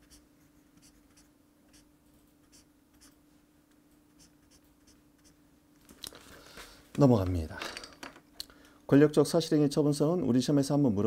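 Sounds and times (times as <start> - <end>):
marker scratching across paper: 0.0 - 3.2, 4.2 - 5.4.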